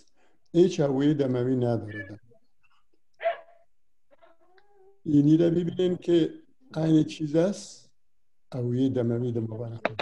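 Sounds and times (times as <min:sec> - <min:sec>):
dog yelping: 0:03.2 - 0:03.6.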